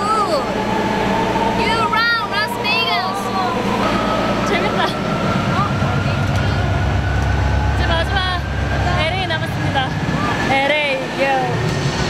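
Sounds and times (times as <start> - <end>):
people chattering: 0.0 - 11.7
muffled concert low rumble: 0.0 - 12.0
thin high tone rising: 0.0 - 12.0
people laughing: 3.9 - 5.3.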